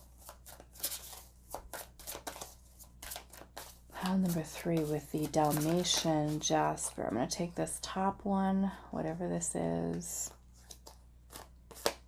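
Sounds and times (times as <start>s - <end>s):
cards being shuffled: 0.0s - 6.9s, 10.4s - 12.0s.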